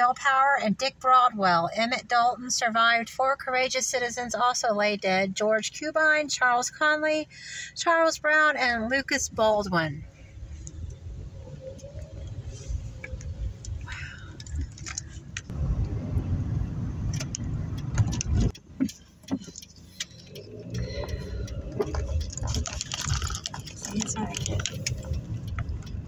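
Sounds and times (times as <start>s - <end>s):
car engine and tyres on wet street: 0.0s - 26.0s
clicks and jingling rattles in cabin: 21.8s - 25.7s.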